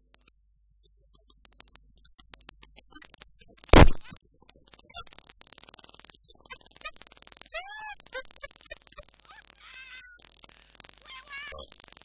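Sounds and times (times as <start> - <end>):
loud noisy synth hit: 3.8 - 4.0.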